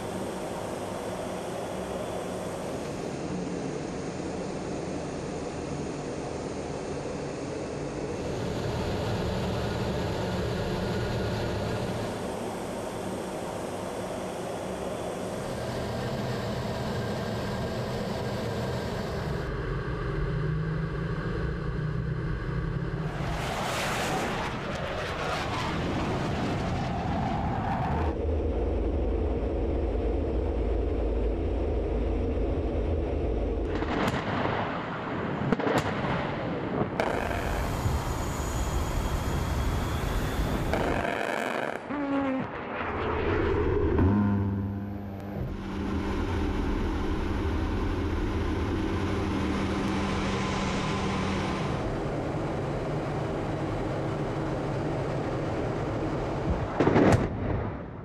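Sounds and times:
jet engines roaring: 0.0 - 58.0
explosion: 42.4 - 44.6, 56.6 - 58.0.

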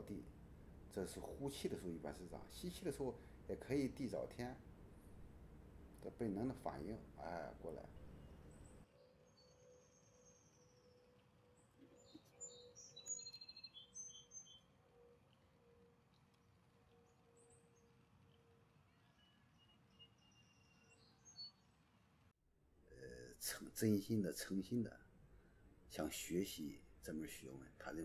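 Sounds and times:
faint steady hum: 0.0 - 12.9, 21.6 - 28.0
birds chirping: 0.0 - 21.8.

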